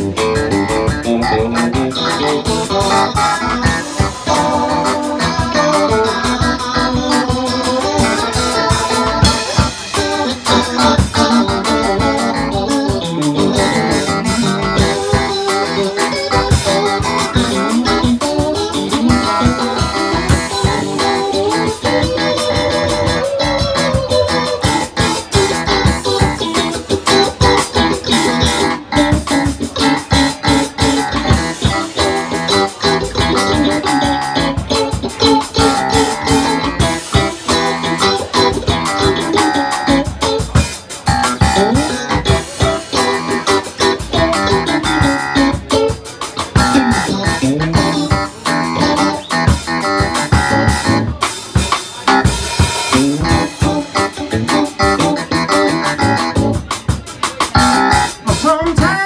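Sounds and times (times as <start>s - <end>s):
drum kit steady groove: 0.0s - 59.0s
electric guitar lead lines: 0.0s - 59.0s
electric keyboard: 0.0s - 59.0s.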